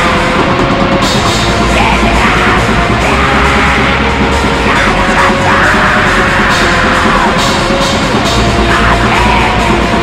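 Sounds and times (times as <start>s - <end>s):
black metal distorted guitars drums: 0.0s - 10.0s.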